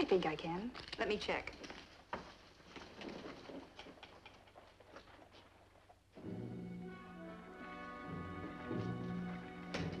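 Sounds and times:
soft clicks and rustles: 0.0 - 6.0.

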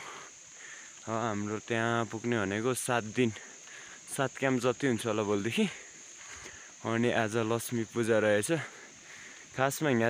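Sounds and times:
insect chorus: 0.0 - 10.0
man talking: 1.0 - 3.5, 4.1 - 5.9, 6.8 - 8.8, 9.5 - 10.0.

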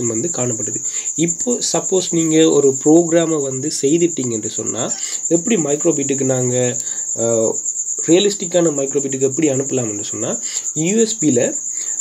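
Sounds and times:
steady high-pitched trill: 0.0 - 12.0.

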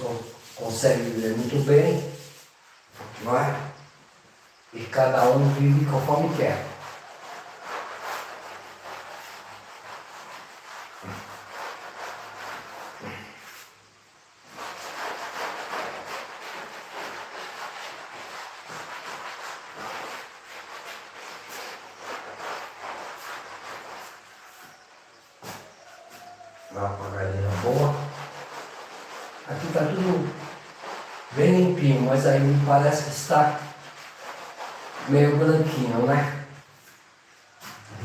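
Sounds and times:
cloth wiping a chalkboard: 0.0 - 38.0.

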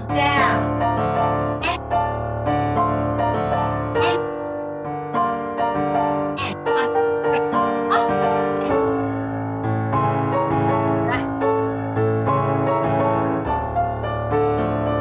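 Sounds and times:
solo piano accompaniment: 0.0 - 15.0.

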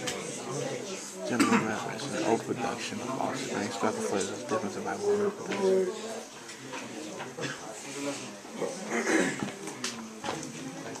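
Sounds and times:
murmur of overlapping voices: 0.0 - 11.0.

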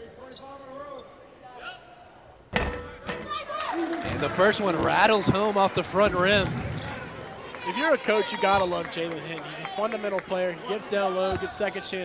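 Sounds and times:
basketball clanking on metal rim: 2.5 - 3.3.

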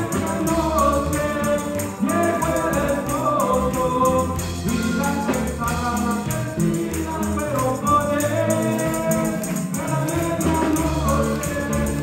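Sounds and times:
electric bass: 0.0 - 12.0
keyboard: 0.0 - 12.0
percussion beat: 0.0 - 12.0
voices singing together: 0.0 - 12.0.

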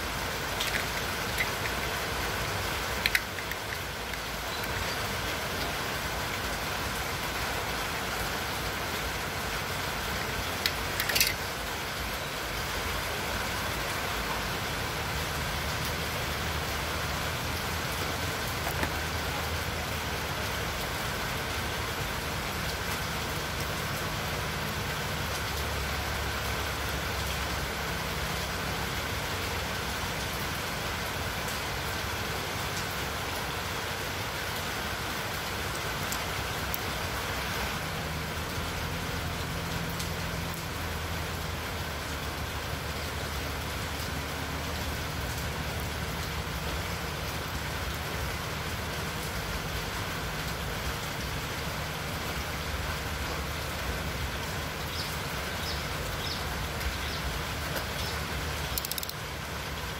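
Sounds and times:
background hiss: 0.0 - 59.9
sharp click: 58.8 - 59.2.

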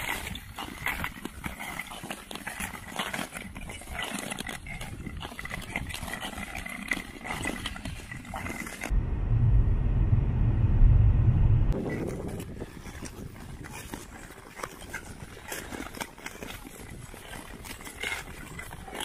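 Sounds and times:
ice skate blades scraping on ice: 0.0 - 8.9, 11.8 - 19.0
road noise inside moving car: 8.9 - 11.8.

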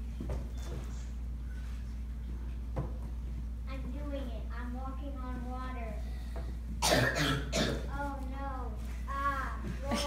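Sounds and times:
person coughing: 6.8 - 7.9.

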